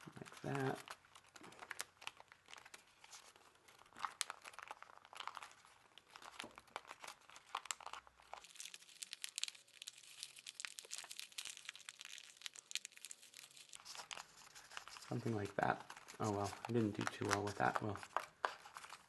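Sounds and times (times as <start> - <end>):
thin paper crinkling: 0.0 - 19.0.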